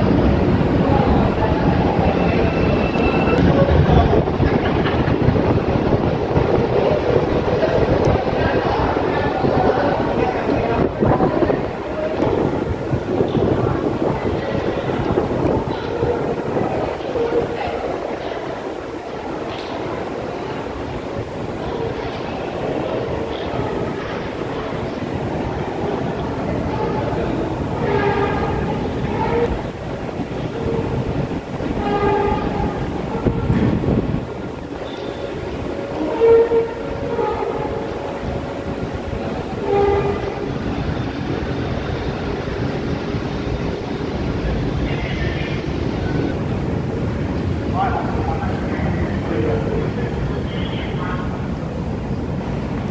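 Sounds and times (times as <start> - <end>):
metro train rumble: 0.0 - 52.9.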